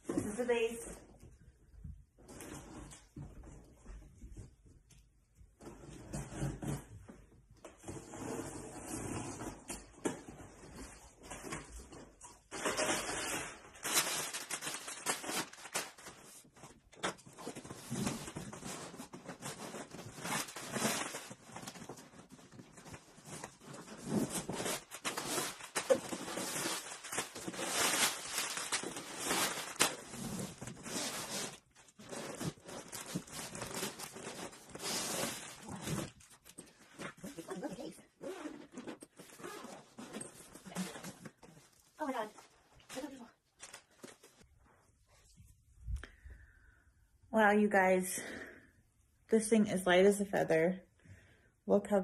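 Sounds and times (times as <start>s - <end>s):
packing paper rustling: 12.5s - 37.1s, 42.8s - 44.4s
zipper opening: 37.2s - 41.2s.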